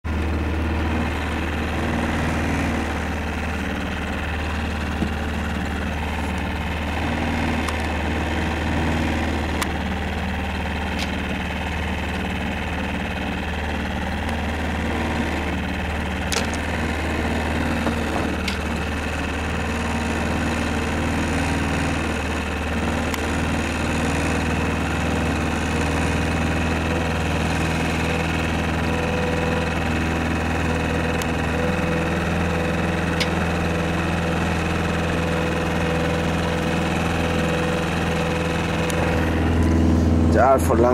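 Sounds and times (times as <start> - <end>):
boat engine droning: 0.0 - 40.9.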